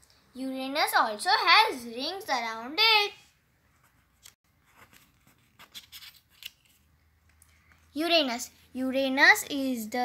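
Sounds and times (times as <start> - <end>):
paper rustling: 3.8 - 6.9.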